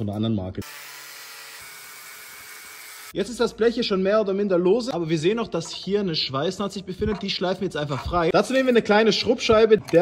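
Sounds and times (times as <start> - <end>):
angle grinder cutting steel: 0.6 - 3.2.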